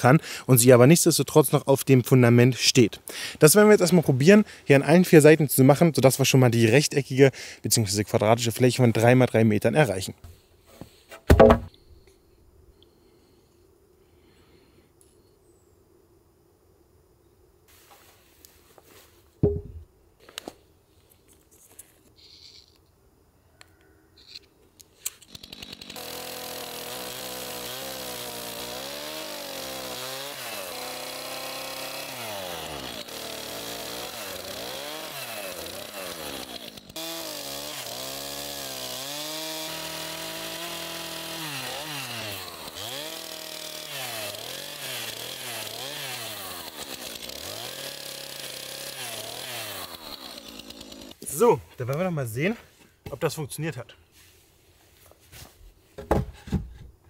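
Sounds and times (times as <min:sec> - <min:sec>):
chainsaw cutting wood: 0:10.8 - 0:11.7, 0:25.0 - 0:51.2.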